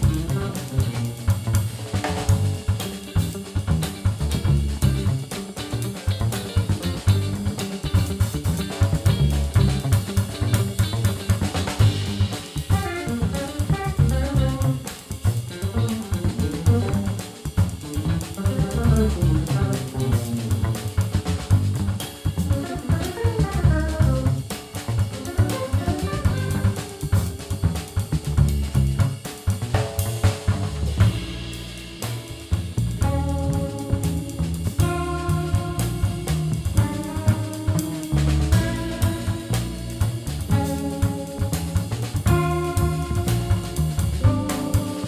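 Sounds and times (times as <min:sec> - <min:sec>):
busy drum groove: 0:00.0 - 0:45.0
jazz fusion band playing: 0:00.0 - 0:45.0
quick runs of guitar notes: 0:22.4 - 0:27.4.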